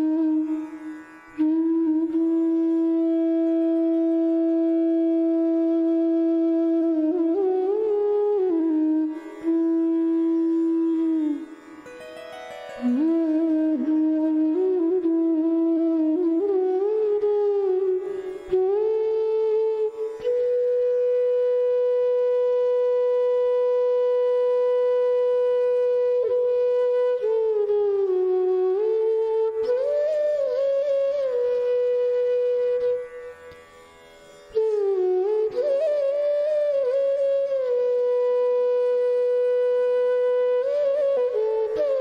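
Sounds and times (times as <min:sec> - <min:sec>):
flute holding long note: 0:00.0 - 0:42.0.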